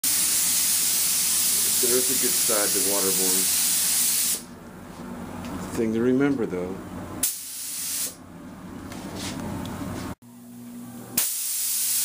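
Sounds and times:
spray gun hissing: 0.0s - 4.5s, 7.2s - 8.2s, 11.2s - 12.0s.

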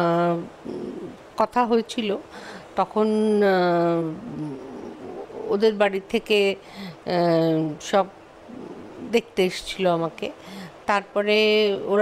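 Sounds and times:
woman murmuring low: 0.2s - 1.2s, 3.7s - 5.8s, 8.5s - 9.2s.

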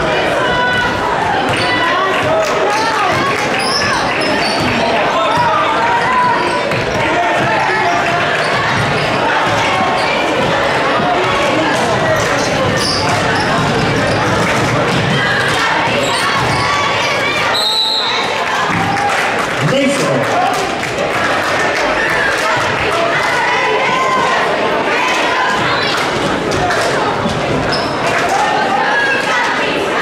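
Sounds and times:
crowd chatter: 0.0s - 30.0s
sneaker squeaks: 3.5s - 5.5s, 8.4s - 10.5s, 12.2s - 14.4s, 15.9s - 18.2s, 27.7s - 28.1s
referee whistle: 17.5s - 18.3s.

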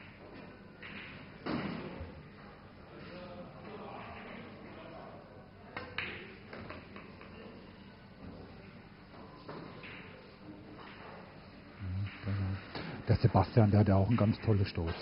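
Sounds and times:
low murmur of hall: 0.0s - 15.0s.

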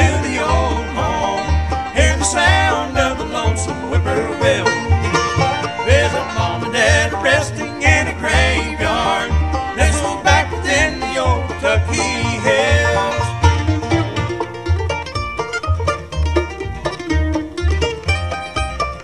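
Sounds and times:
acoustic guitar: 0.0s - 19.0s
banjo: 0.0s - 19.0s
fiddle: 0.0s - 19.0s
upright bass walking: 0.0s - 19.0s.

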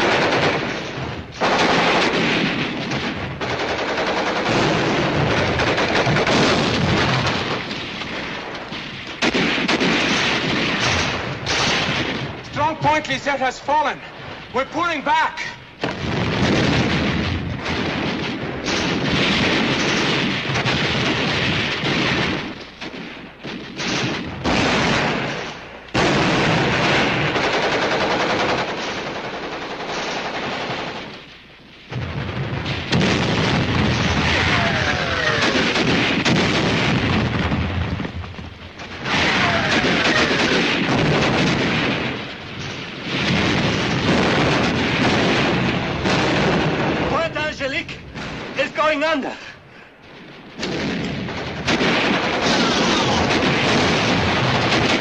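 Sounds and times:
explosions: 0.0s - 29.2s, 29.8s - 55.0s
machine-gun and rifle fire: 0.0s - 49.3s, 50.1s - 55.0s.

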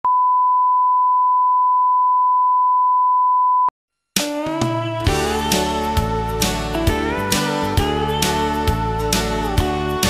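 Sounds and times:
sine-wave test tone: 0.0s - 3.7s.

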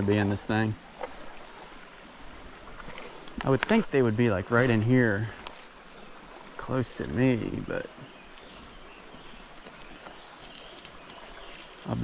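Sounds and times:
creek water rushing: 0.0s - 12.0s.

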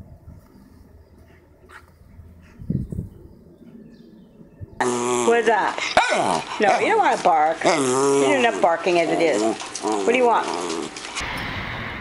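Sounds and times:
dog whining: 4.8s - 6.9s.

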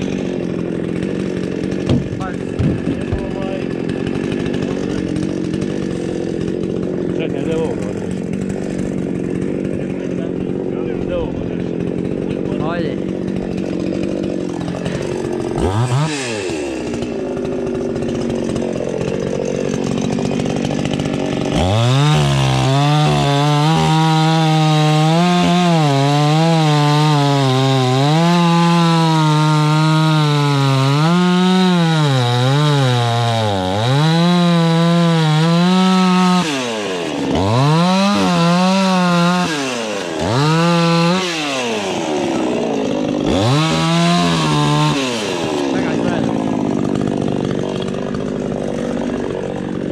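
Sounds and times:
chainsaw cutting logs: 0.0s - 49.9s.

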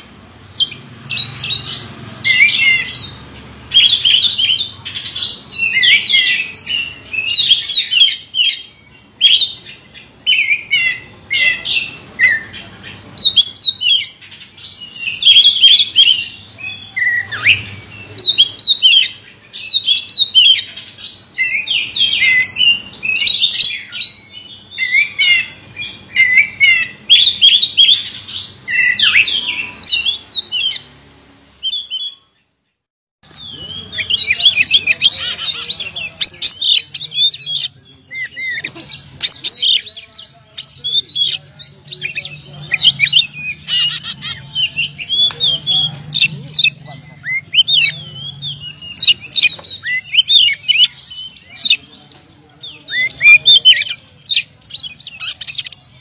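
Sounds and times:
bird singing whistles and chirps: 13.2s - 30.9s, 40.6s - 55.9s.

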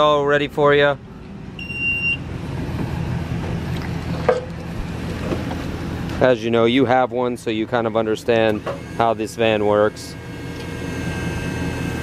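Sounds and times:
lift motor humming: 1.0s - 12.0s
electronic warning beep: 1.6s - 2.3s, 8.6s - 12.0s.

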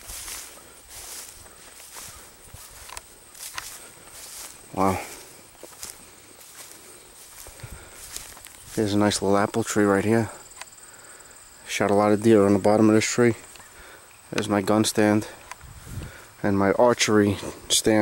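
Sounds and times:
footsteps swishing through tall grass: 0.0s - 9.8s, 15.3s - 16.3s.

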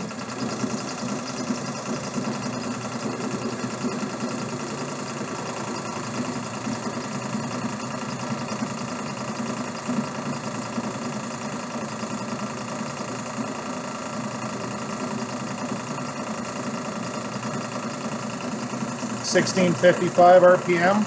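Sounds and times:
electric motor hum: 0.0s - 21.0s.

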